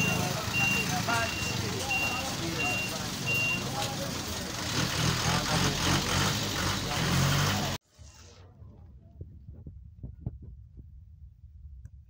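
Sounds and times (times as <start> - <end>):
vehicle reversing alarm beeping: 0.0 - 4.2
engine running: 0.0 - 7.8
voices: 0.0 - 7.8
street noise: 0.0 - 10.6.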